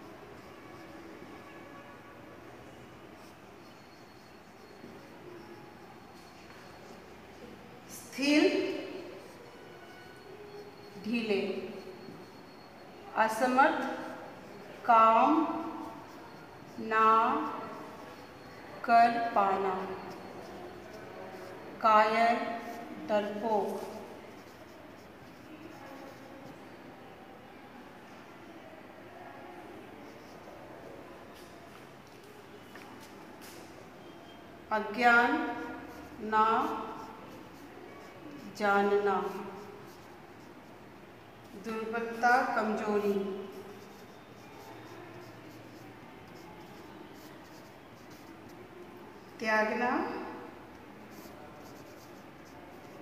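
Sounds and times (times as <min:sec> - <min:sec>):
marker pen writing on whiteboard: 0:02.7 - 0:07.1, 0:13.5 - 0:14.2, 0:14.8 - 0:26.6, 0:30.0 - 0:40.8, 0:41.5 - 0:53.0.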